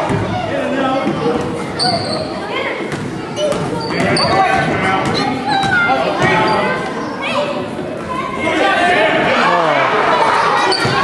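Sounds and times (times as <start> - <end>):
people talking and calling out: 0.0 - 11.0
sneaker squeak: 1.7 - 6.8, 10.6 - 11.0.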